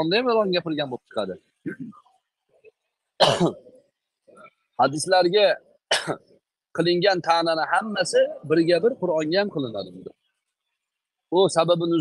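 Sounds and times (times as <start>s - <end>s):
person coughing: 1.7s - 2.0s, 3.2s - 3.7s, 5.9s - 6.2s.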